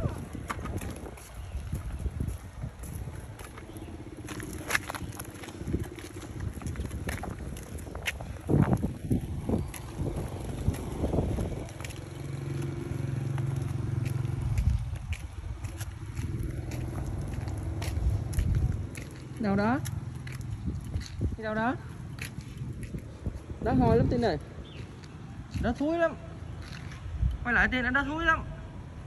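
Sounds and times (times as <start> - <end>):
plastic wheels rolling on pavement: 0.0 - 25.6.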